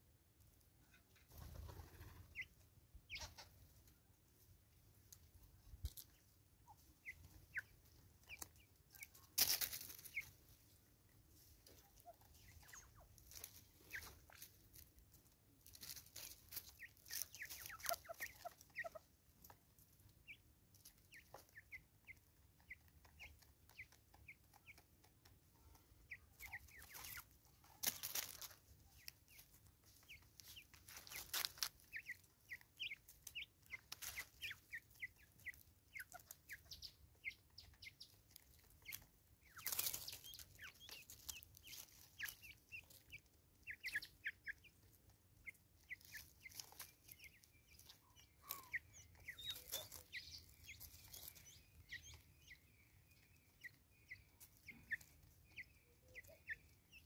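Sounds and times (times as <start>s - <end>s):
soft rustle: 3.1s - 20.0s, 25.5s - 36.9s, 37.6s - 56.2s
squeaky bird calls: 45.9s - 57.0s.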